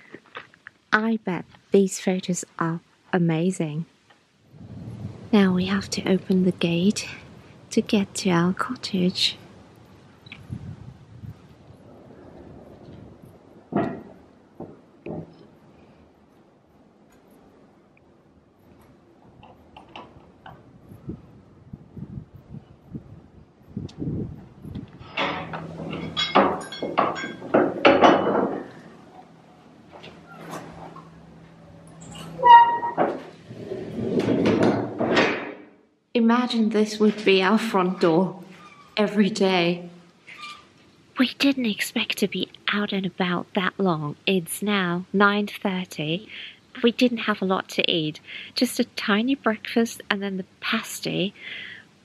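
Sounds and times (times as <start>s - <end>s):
wooden gate opening: 12.0s - 15.6s, 24.9s - 35.8s, 37.2s - 39.0s
wooden gate doors knocking: 13.7s - 15.4s, 25.2s - 28.8s
gate creaking: 25.0s - 35.7s, 37.2s - 39.0s.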